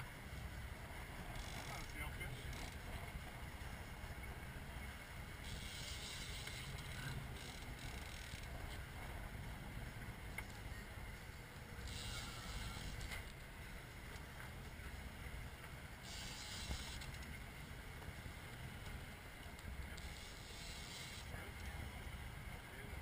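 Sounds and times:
boat engine rumbling: 0.0 - 23.0.

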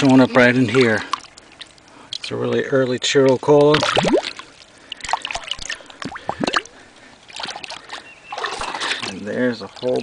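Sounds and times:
hand sloshing in creek water: 0.0 - 2.4, 3.3 - 10.0
water splashing and gurgling: 0.0 - 10.0.

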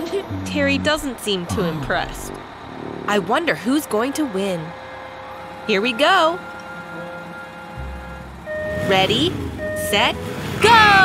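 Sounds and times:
cartoon vehicle engines rumbling: 0.0 - 11.0
held electronic beep: 8.4 - 10.2.

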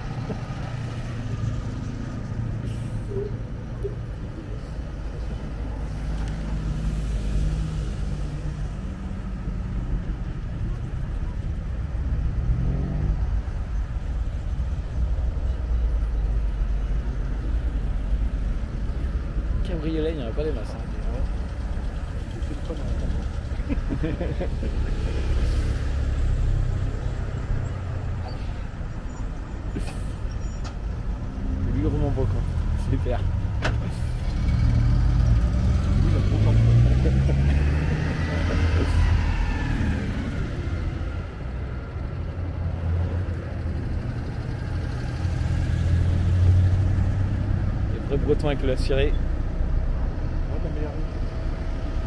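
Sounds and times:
road traffic passing: 0.0 - 52.0
vehicle engine passing by: 12.0 - 14.5, 20.4 - 28.6, 31.2 - 52.0.

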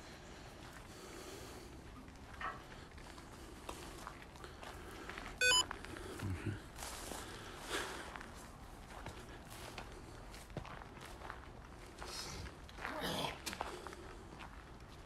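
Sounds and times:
short electronic beep: 5.4 - 5.6
footsteps through long grass: 6.8 - 12.2.

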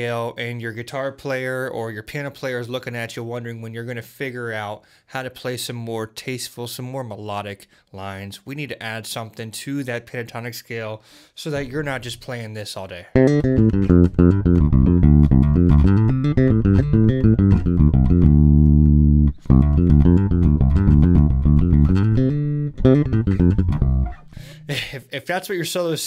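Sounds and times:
electric bass guitar licks: 13.1 - 25.0.

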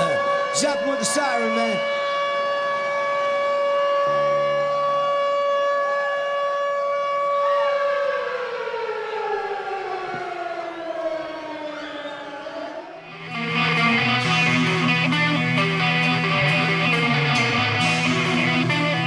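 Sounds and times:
siren-like wail: 0.0 - 19.0.

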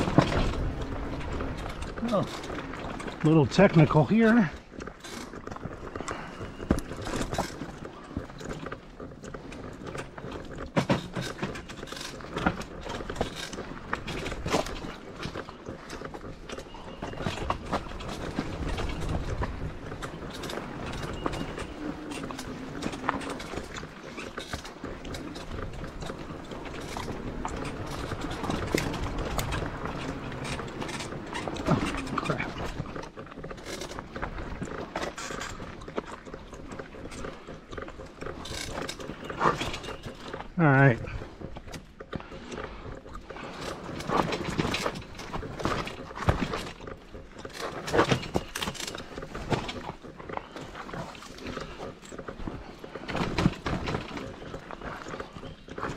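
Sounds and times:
bike knocking and rattling over rocks: 0.0 - 55.9.

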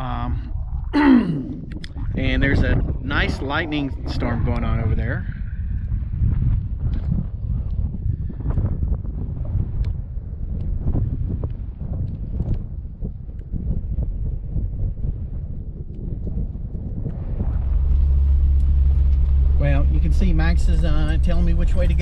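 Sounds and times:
wind buffeting microphone: 0.0 - 22.0
car cabin engine drone: 17.1 - 22.0.

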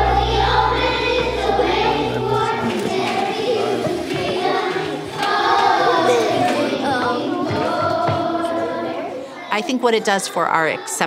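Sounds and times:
children singing together: 0.0 - 11.0.

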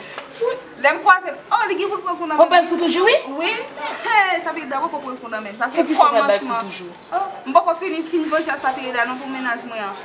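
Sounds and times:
women talking animatedly: 0.4 - 10.0.

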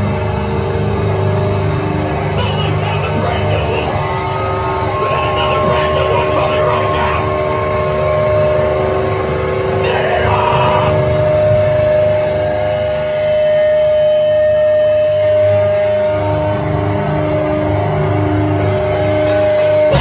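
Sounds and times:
droning electric guitars and bass: 0.0 - 20.0
guitar feedback high tones: 0.0 - 20.0
pulsing note: 3.5 - 20.0.

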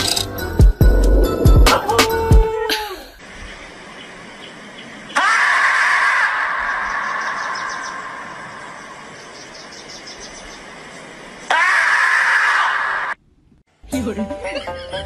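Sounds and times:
marmot screaming: 5.2 - 8.0, 11.5 - 13.2.

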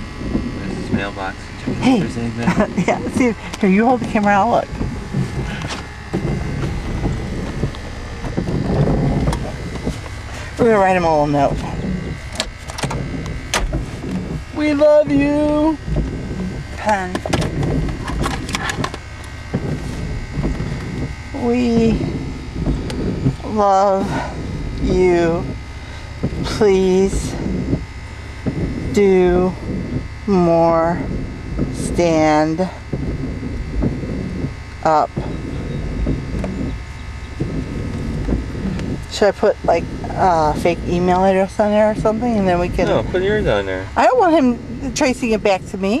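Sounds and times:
low steady rumble: 0.0 - 46.0.

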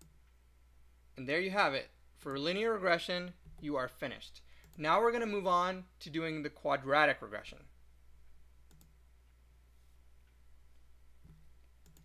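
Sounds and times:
faint computer mouse clicks: 8.7 - 9.0, 11.2 - 12.0.

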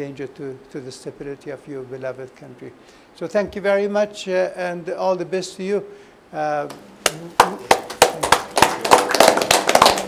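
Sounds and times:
people applauding: 7.0 - 10.0.

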